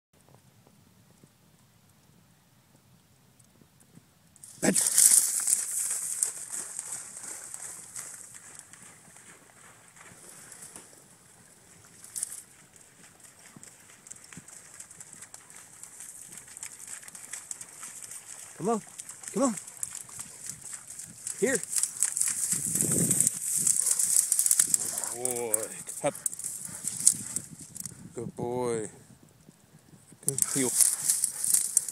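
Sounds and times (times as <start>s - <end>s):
sharp crackle of brush: 4.4s - 28.0s, 30.2s - 31.9s
dry reeds and brush rustling: 4.4s - 28.1s, 30.2s - 31.9s.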